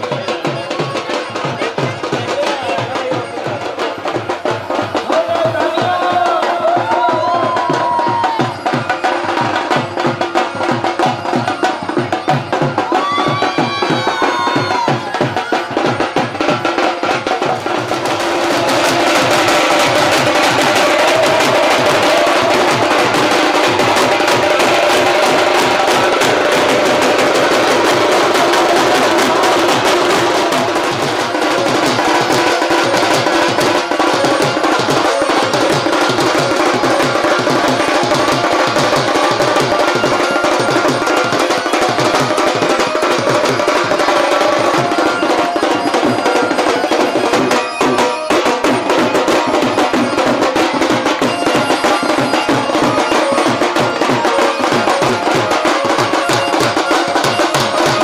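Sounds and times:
drum-led music: 0:00.0 - 0:58.0.

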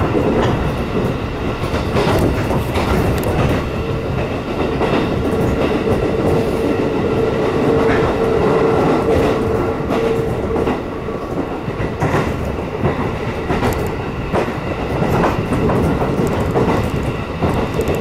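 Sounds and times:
train wheels rumbling on rail: 0:00.0 - 0:18.0.

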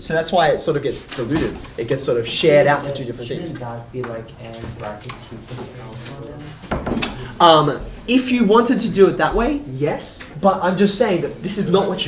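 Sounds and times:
sharp wooden knock: 0:06.6 - 0:07.2.

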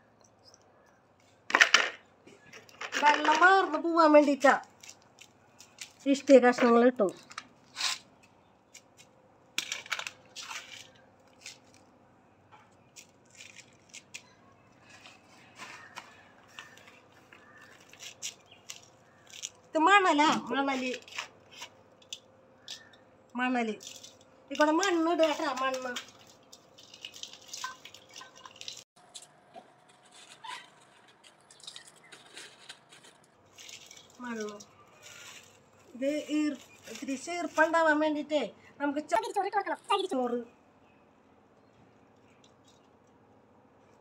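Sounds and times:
soil falling into a metal basin: 0:09.6 - 0:11.0, 0:23.8 - 0:35.5
hand scooping gritty potting mix: 0:12.9 - 0:19.6, 0:23.8 - 0:38.0.

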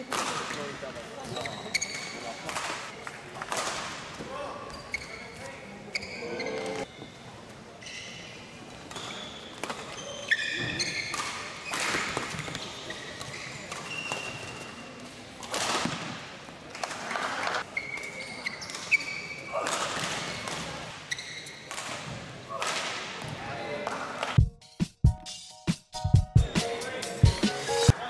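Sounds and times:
shoes squeaking: 0:00.0 - 0:03.0, 0:04.3 - 0:07.2, 0:07.8 - 0:15.1, 0:16.9 - 0:21.7.

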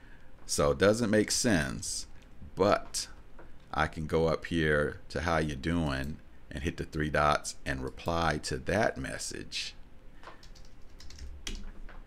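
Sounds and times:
computer keyboard keystrokes: 0:10.2 - 0:12.0.

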